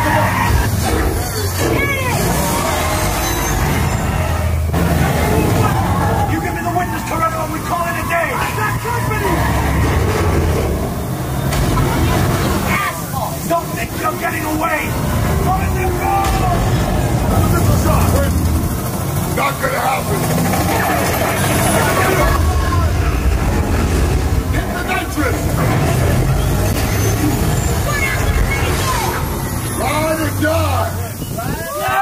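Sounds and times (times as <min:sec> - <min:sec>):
car engine effects: 0:00.0 - 0:32.0
voices: 0:00.0 - 0:32.0
heavy low rumble: 0:09.2 - 0:29.8.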